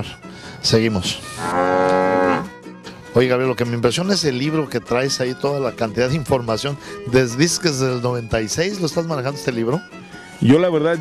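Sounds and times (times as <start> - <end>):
cow mooing: 1.3 - 2.5.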